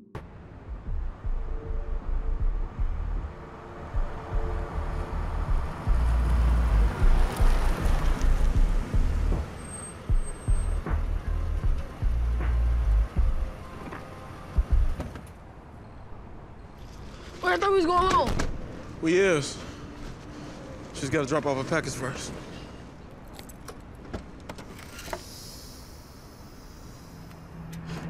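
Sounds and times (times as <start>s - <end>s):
car driving slowly and stopping: 0.2s - 15.4s
music with heavy bass: 0.6s - 13.6s, 14.5s - 15.0s.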